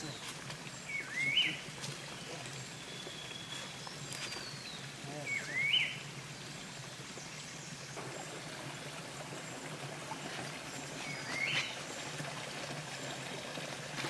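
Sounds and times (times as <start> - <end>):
rush like running water: 0.0 - 14.0.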